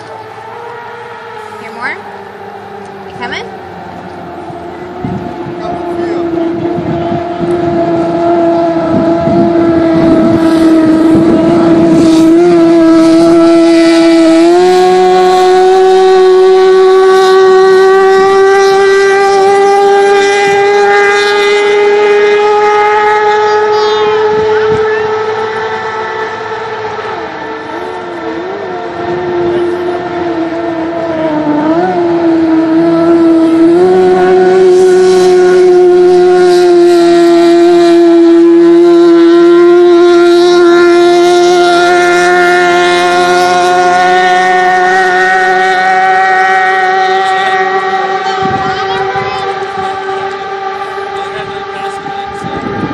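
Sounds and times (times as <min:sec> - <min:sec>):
racing boat engine high revs: 0:00.0 - 0:52.9.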